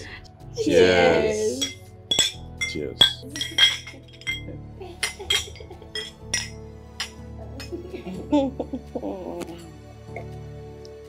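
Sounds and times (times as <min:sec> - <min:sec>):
soft background music: 0:00.0 - 0:11.0
glasses clinking: 0:00.8 - 0:07.8.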